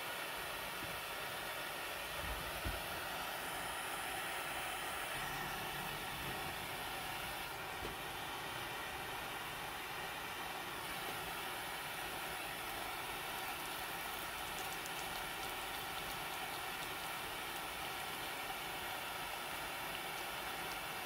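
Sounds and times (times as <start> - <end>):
gas burner flame hissing: 0.0 - 21.0.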